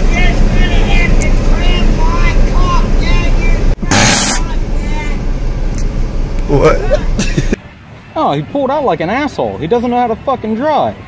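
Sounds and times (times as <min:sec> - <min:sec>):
loud hissing burst: 0:03.8 - 0:04.6.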